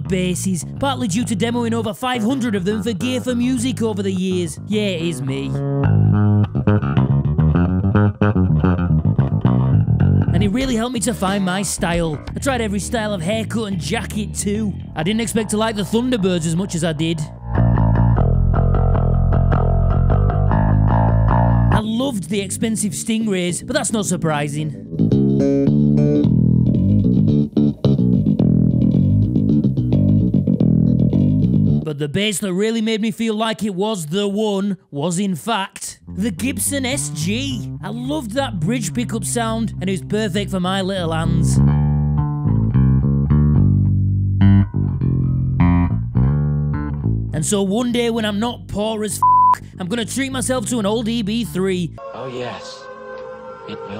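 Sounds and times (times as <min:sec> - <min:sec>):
electric bass plucked notes: 0:00.0 - 0:31.9, 0:36.0 - 0:52.0.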